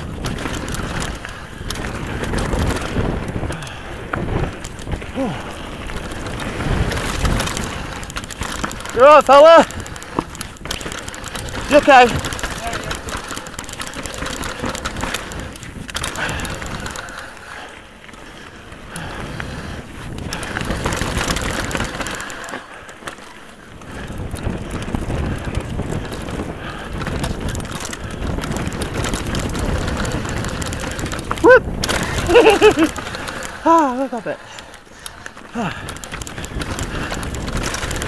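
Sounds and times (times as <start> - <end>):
wind rush on microphone: 0.0 - 22.9, 23.6 - 38.0
bike rattling: 0.0 - 38.0
tyres rolling over loose stones: 0.0 - 38.0.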